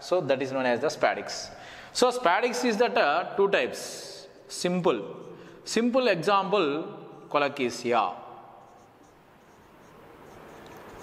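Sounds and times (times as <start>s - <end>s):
marker writing on whiteboard: 8.6s - 11.0s.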